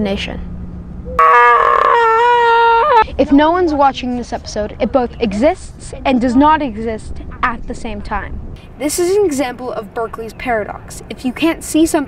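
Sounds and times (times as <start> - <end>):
high-pitched howl-like vocal note: 1.1 - 3.0.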